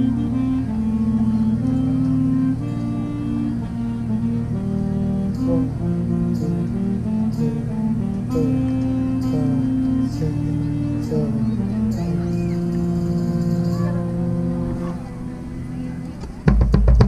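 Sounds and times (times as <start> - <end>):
marching band slow melody: 0.0 - 17.0.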